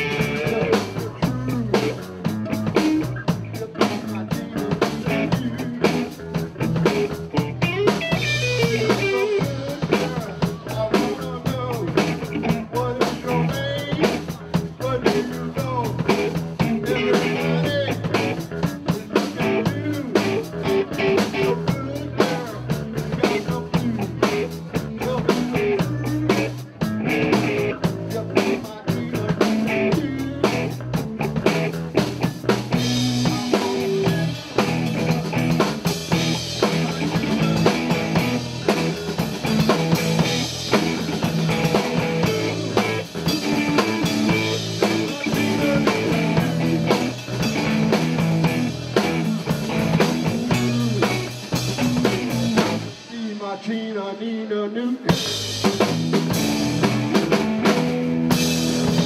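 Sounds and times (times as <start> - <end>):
electric bass: 0.0 - 53.1, 55.1 - 59.0
drum kit beats: 0.0 - 53.8, 55.0 - 59.0
electric guitar: 0.0 - 54.4, 55.0 - 59.0.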